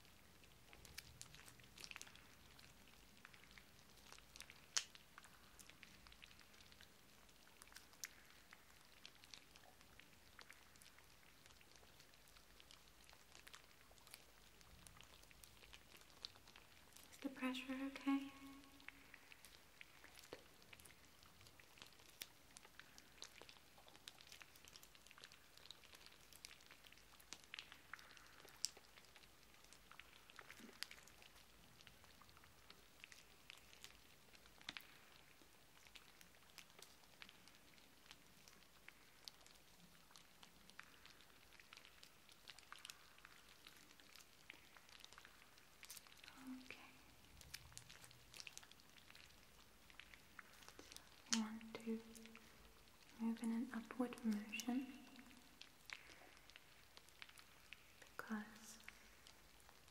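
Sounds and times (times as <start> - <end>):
soft crackles of hands: 0.0 - 59.9.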